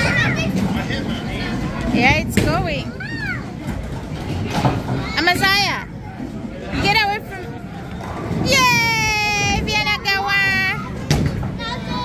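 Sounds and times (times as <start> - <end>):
low rumble of bowling alley: 0.0 - 12.0.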